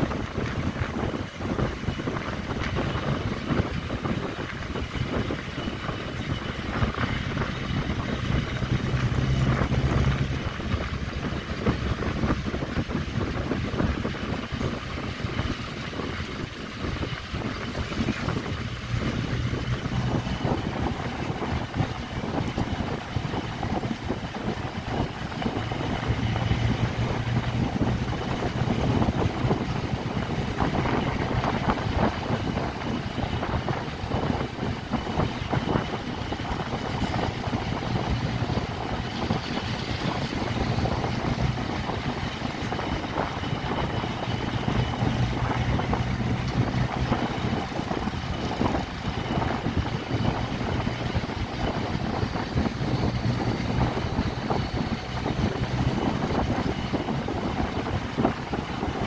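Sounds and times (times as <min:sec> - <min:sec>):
vehicle engine and road noise: 0:00.0 - 0:59.0
wind buffeting microphone: 0:00.0 - 0:59.0.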